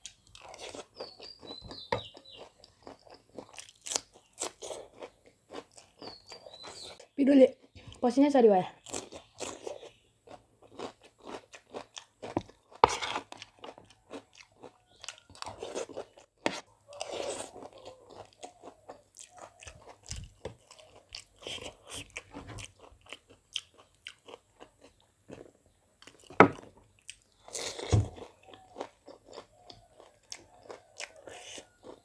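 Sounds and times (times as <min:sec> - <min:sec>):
crunching bites and chewing: 0:00.0 - 0:07.0, 0:08.8 - 0:32.0.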